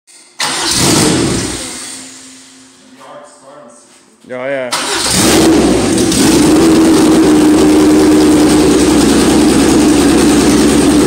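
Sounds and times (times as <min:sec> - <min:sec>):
car engine starting up: 0:00.2 - 0:02.5, 0:04.7 - 0:11.0.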